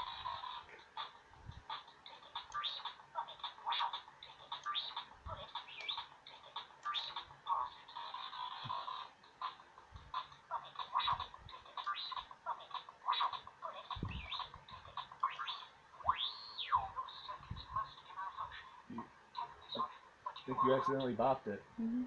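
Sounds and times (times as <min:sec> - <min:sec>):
toy robot electronic beeps and chirps: 0:01.7 - 0:18.7.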